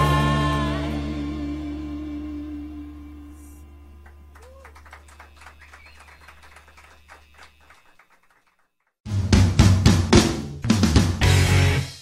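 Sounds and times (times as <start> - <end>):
low amplifier hum: 0.0 - 6.7
faint scattered clapping: 4.0 - 9.0.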